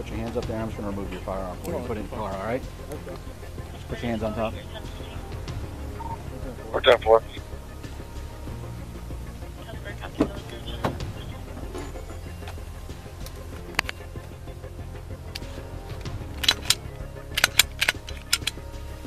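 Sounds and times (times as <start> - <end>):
metallic clicks and jingles: 15.3 - 18.6.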